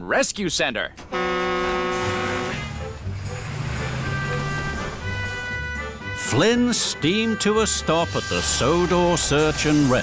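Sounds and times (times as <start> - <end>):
fire engine motor rumble: 0.9 - 10.0
background music: 1.1 - 10.0.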